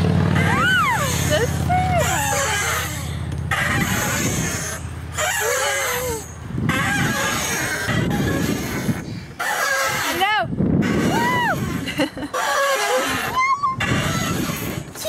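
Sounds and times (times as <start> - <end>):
wind buffeting microphone: 0.0 - 15.0
high squeal: 0.3 - 10.2, 10.8 - 15.0.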